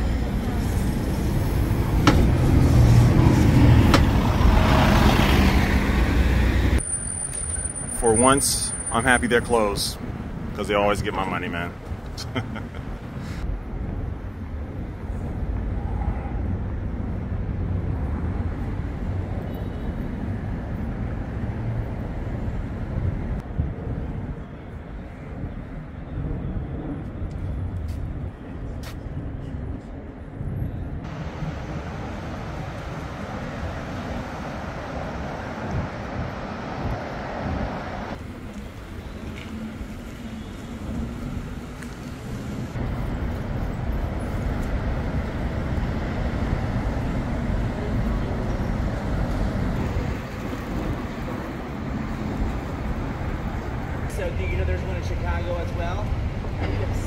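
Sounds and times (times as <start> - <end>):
traffic rumble: 0.0 - 57.0.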